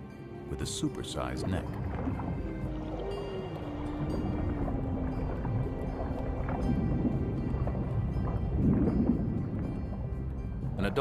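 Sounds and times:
low background music note: 0.0 - 11.0
low rushing water-like noise: 0.0 - 11.0.

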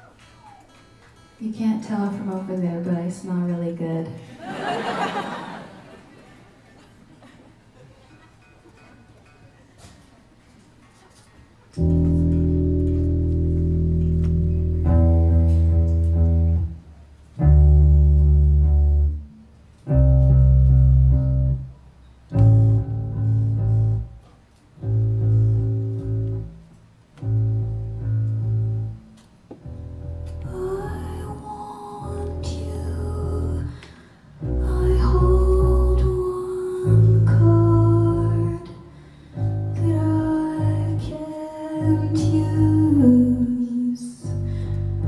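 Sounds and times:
electric guitar chords: 11.8 - 16.8, 17.4 - 24.2, 24.8 - 38.7
electric bass notes: 11.8 - 45.0.

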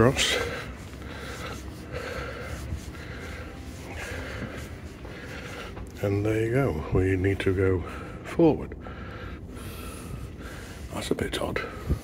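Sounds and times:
faint breathy puffs: 0.0 - 6.0, 6.8 - 11.0
low steady hum: 0.0 - 12.0
soft breathing close to microphone: 0.0 - 12.0.

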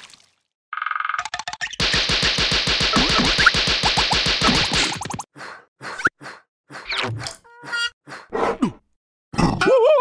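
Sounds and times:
cartoon character grunt: 9.4 - 10.0.

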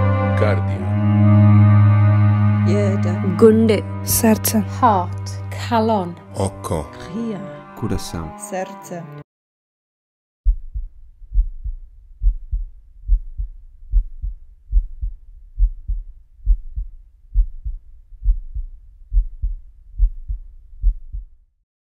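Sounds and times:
amplified heartbeat thumps: 10.5 - 21.4.

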